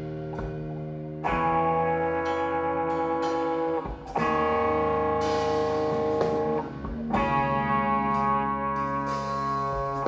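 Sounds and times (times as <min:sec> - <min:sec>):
electric guitar chord ringing: 0:00.0 - 0:10.0.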